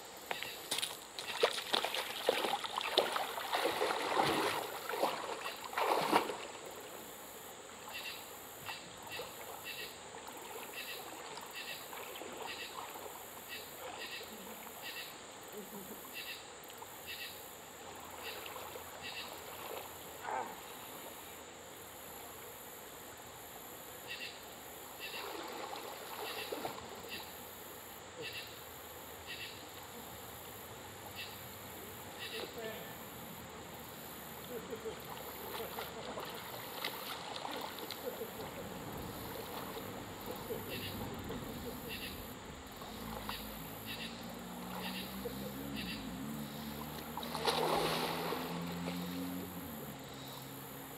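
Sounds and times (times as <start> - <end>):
insect drone: 0.0 - 50.9
water splashing from swimming: 0.7 - 7.1, 8.6 - 14.9, 17.8 - 20.7, 25.1 - 27.4, 33.7 - 50.9.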